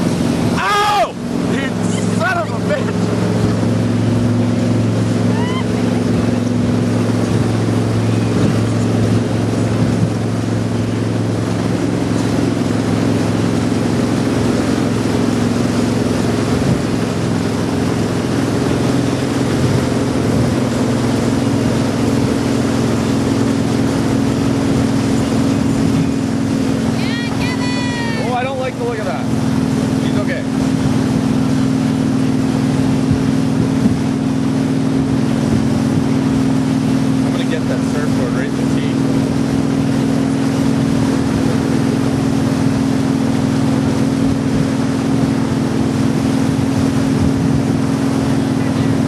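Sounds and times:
motorboat engine running: 0.0 - 49.0
water around hull: 0.0 - 49.0.

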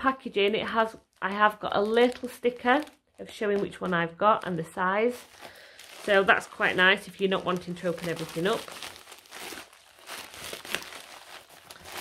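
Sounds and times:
plastic crinkling: 0.3 - 12.0.

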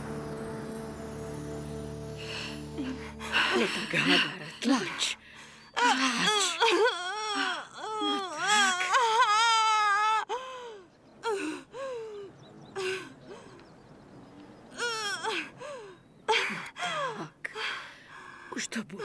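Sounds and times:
woman wailing in pain: 5.8 - 10.4.

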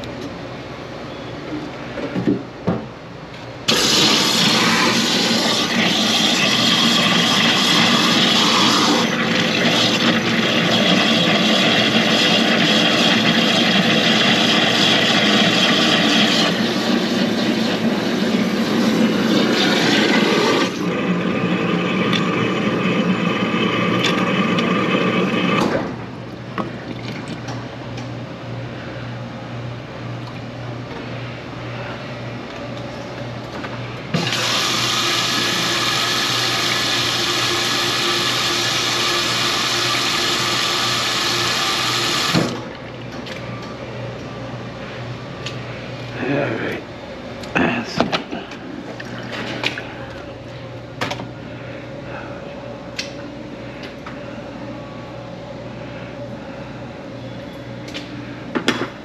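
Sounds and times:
loud steady machine noise: 3.6 - 26.4, 31.1 - 42.7
water running from faucet into sink: 3.7 - 16.5, 34.2 - 42.3.

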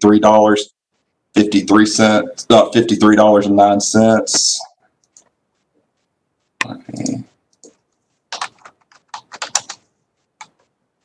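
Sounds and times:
typing on keyboard: 6.6 - 10.7.

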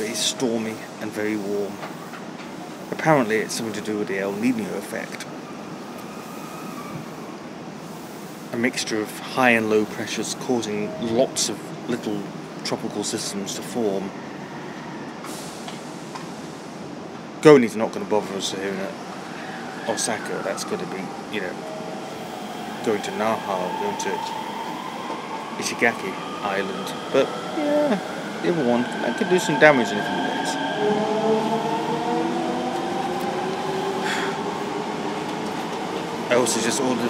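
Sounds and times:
steady background noise: 0.0 - 37.0
brief hiss: 15.2 - 16.4
train running: 28.6 - 37.0.

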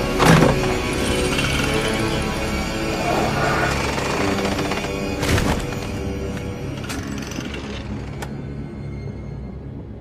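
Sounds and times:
suspenseful film score music: 0.0 - 10.0.

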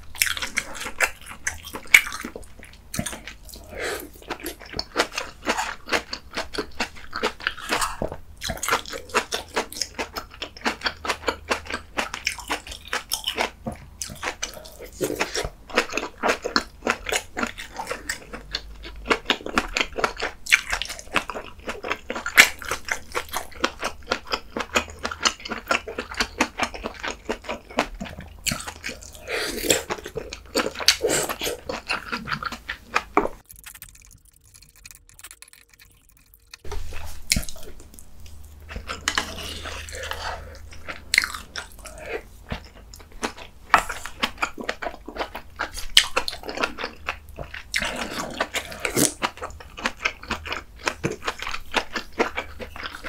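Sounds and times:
wet chewing with mouth smacks: 0.2 - 53.0.

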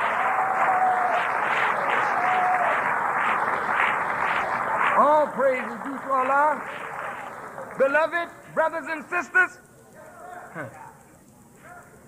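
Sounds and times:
audience cheering: 0.0 - 8.2
audience clapping: 0.0 - 8.4.

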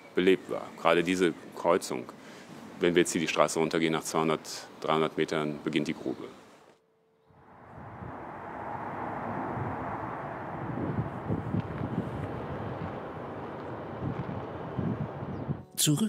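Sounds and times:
wind buffeting microphone: 7.3 - 15.6.

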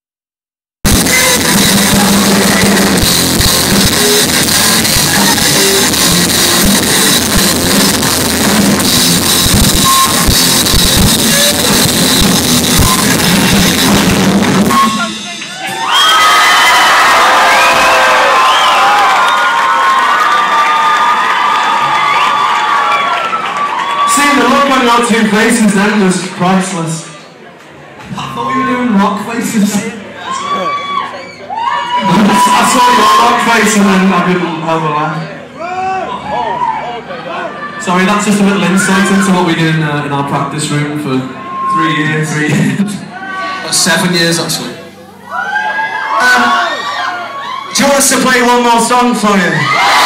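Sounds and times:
live rock band playing: 0.8 - 16.0
crowd cheering and screaming: 0.9 - 24.9, 28.2 - 34.5, 35.5 - 39.6, 41.2 - 44.0, 45.1 - 48.5, 49.2 - 50.0.

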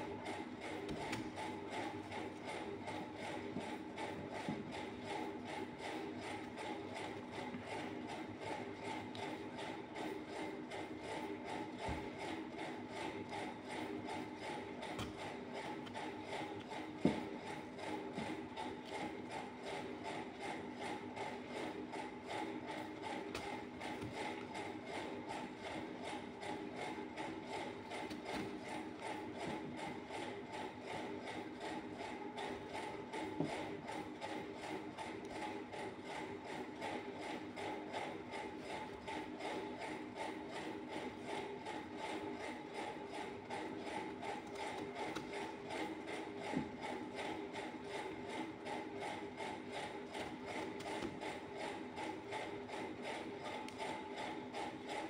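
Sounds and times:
machine hum with fast rattle: 0.0 - 55.0.

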